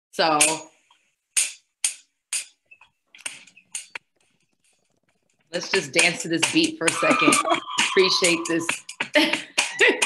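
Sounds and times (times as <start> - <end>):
sharp percussive beat hits: 5.6 - 10.0.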